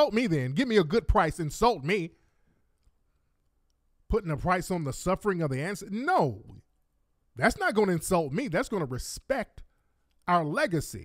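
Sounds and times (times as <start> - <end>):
man talking: 0.0 - 2.2, 4.1 - 6.6, 7.4 - 11.0.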